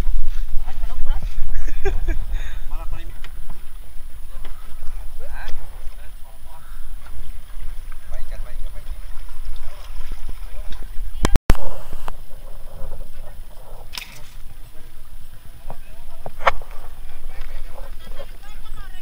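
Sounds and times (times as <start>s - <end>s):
wind rumble on microphone: 0.0s - 19.0s
people talking indistinctly: 0.5s - 19.0s.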